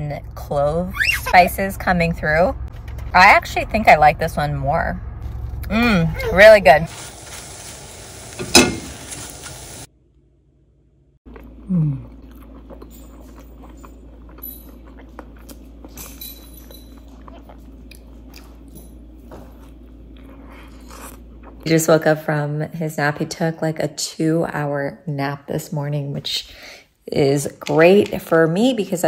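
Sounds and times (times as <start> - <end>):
eggs sizzling in a frying pan: 6.9 - 9.9
person chewing and biting toast: 11.3 - 21.6
person humming mm: 11.6 - 12.2.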